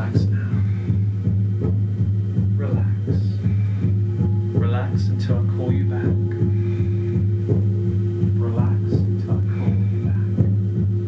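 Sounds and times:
low pulsing drone: 0.0s - 11.0s.

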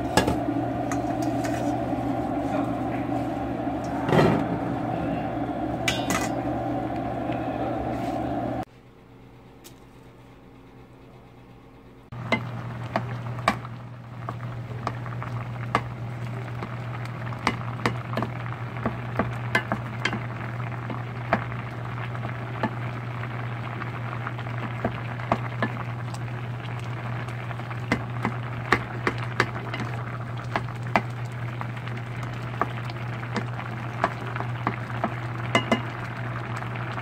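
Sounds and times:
pumpkin boiling in a pot: 0.0s - 8.7s, 11.0s - 37.0s
steady low hum: 0.0s - 37.0s.

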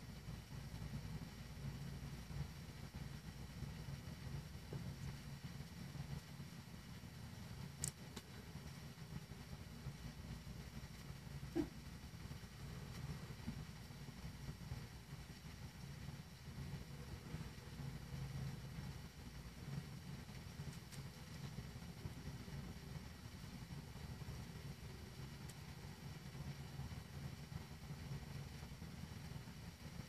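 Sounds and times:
faint low hum: 0.0s - 30.0s
light hiss: 0.0s - 30.0s.

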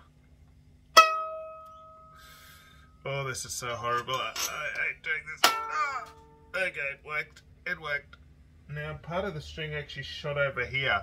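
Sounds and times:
violin string twang ringing: 1.0s - 2.1s, 5.4s - 6.5s.

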